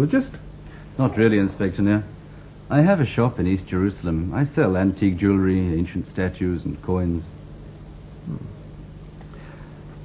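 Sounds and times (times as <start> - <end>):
steady low hum: 0.0 - 10.0
man humming hmm: 8.2 - 8.7.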